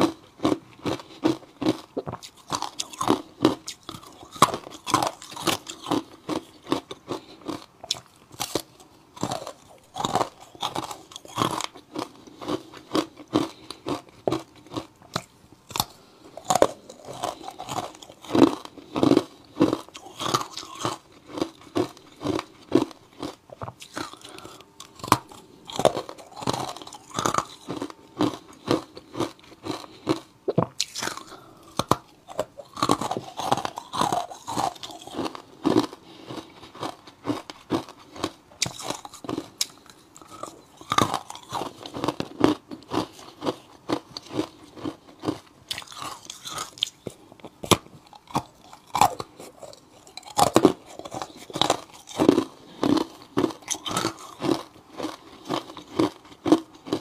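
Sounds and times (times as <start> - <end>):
crunching and chewing ice: 0.0 - 57.0.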